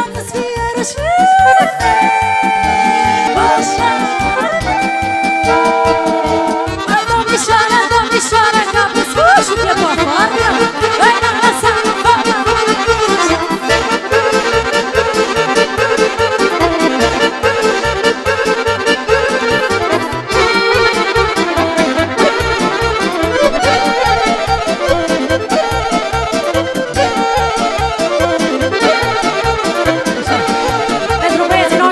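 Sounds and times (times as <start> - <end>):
accordion playing fast melody: 0.0 - 31.9
steady driving beat: 13.2 - 31.9.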